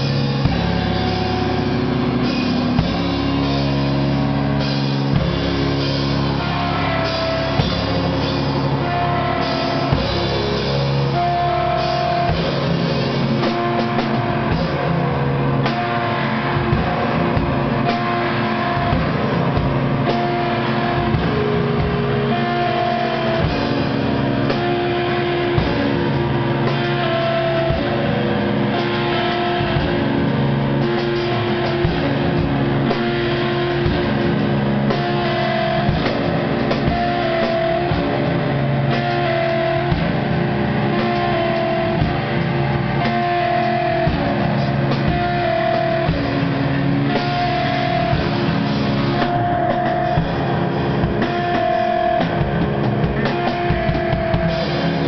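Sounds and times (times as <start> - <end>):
drum kit hits: 0.0 - 55.0
electric guitar held notes: 0.0 - 55.0.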